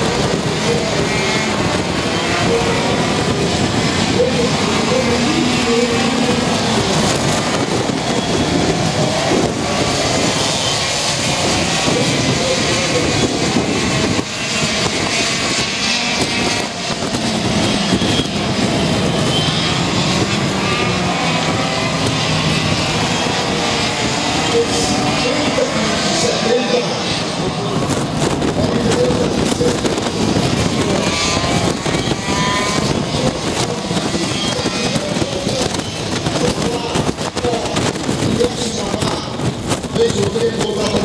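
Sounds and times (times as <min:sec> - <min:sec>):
racing kart engines: 0:00.0 - 0:41.0.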